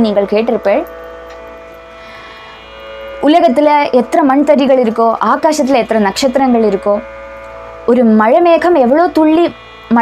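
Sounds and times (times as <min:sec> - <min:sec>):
low hum: 0:00.0 - 0:10.0
sruti drone: 0:00.0 - 0:10.0.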